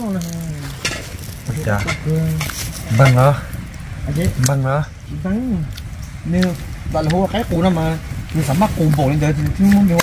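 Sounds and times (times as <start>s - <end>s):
campfire crackling and popping: 0.0s - 10.0s.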